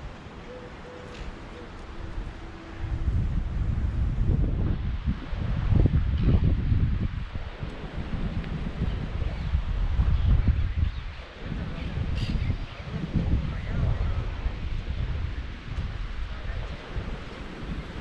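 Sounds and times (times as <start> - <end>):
wind buffeting microphone: 1.0 - 18.0.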